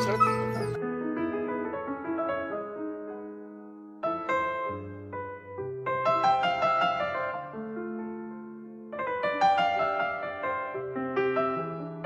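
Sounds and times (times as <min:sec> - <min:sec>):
dog whimpering: 0:00.0 - 0:00.8
soft piano music: 0:00.0 - 0:12.0.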